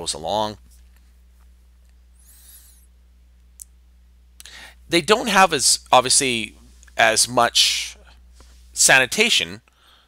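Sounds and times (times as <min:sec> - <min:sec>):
low electrical hum: 0:00.0 - 0:10.0
breath: 0:02.2 - 0:02.9, 0:04.4 - 0:04.8, 0:09.7 - 0:10.0
person speaking: 0:04.4 - 0:09.6.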